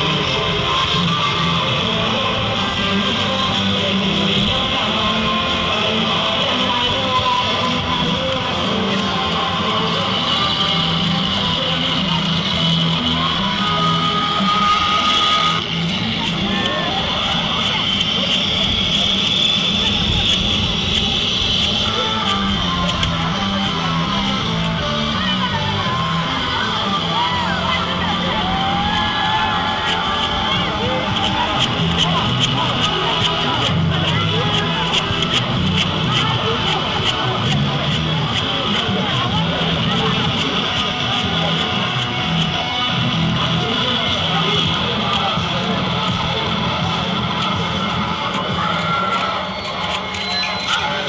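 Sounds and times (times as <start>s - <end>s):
parade music with bass line: 0.0s - 51.0s
voices of crowd: 0.0s - 51.0s.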